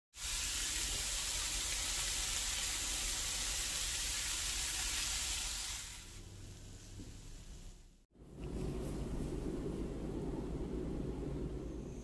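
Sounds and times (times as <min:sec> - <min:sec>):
food sizzling in a pan: 0:00.2 - 0:07.8.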